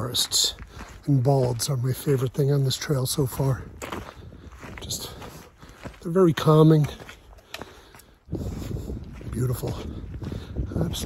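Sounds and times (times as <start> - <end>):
footsteps on dirt trail: 0.0 - 11.0
wind buffeting microphone: 0.0 - 11.0.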